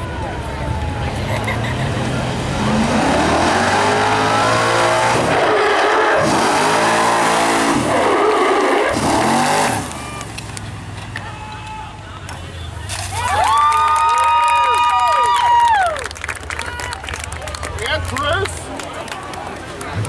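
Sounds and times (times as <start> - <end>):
fire truck engine revving: 1.4 - 11.0.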